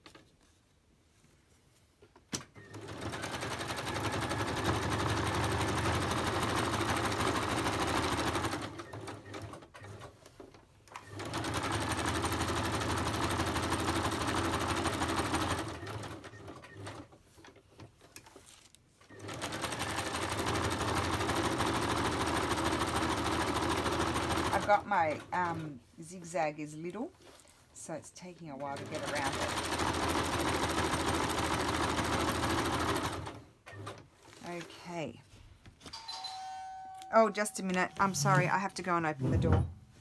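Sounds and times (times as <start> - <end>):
sewing machine stitching: 2.4 - 17.5, 19.0 - 25.7, 28.5 - 34.6.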